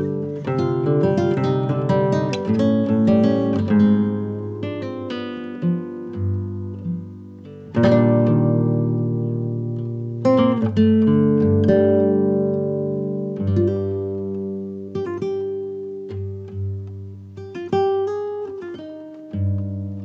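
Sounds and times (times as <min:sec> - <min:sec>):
acoustic guitar picking and strumming: 0:00.0 - 0:20.0.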